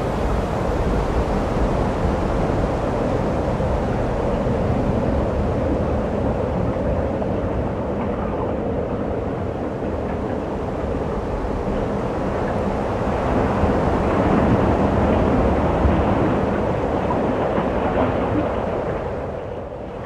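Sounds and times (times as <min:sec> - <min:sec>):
open sea water: 0:00.0 - 0:20.0
wind on microphone: 0:00.0 - 0:20.0.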